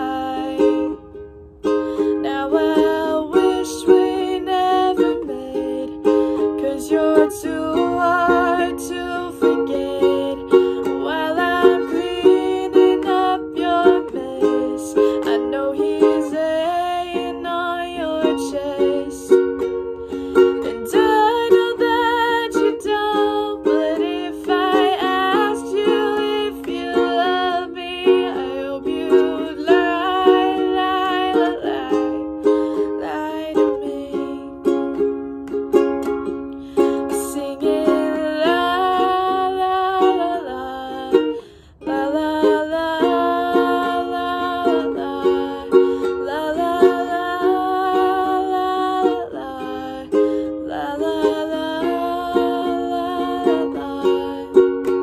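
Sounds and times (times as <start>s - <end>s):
ukulele strumming: 0.0s - 55.0s
woman singing: 0.0s - 55.0s.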